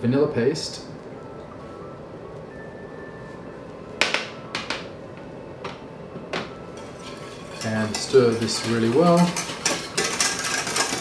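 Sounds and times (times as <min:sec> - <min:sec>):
soft background music: 0:00.3 - 0:09.4
utensils knocking on saucepan: 0:06.4 - 0:11.0.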